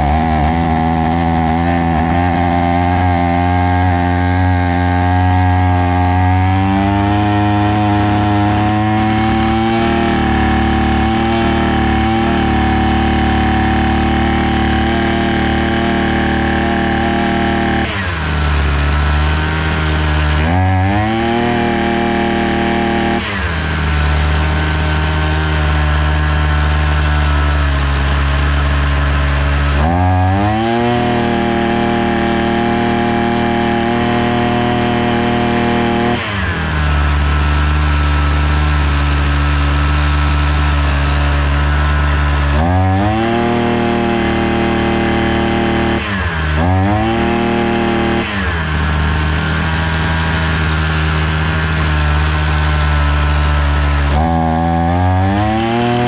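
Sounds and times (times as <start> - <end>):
brush cutter engine running: 0.0 - 56.0.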